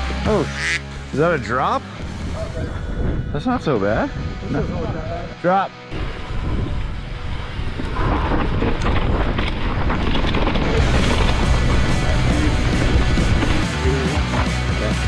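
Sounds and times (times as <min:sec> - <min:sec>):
background music: 0:00.0 - 0:07.7, 0:10.8 - 0:15.0
wind buffeting microphone: 0:02.0 - 0:13.7
bike tyre rumble: 0:02.0 - 0:15.0
bike rattle: 0:06.0 - 0:14.9.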